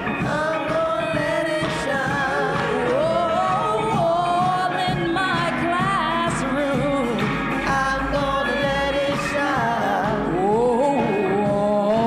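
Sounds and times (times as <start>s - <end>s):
gospel choir singing: 0.0s - 12.0s
musical accompaniment: 0.0s - 12.0s.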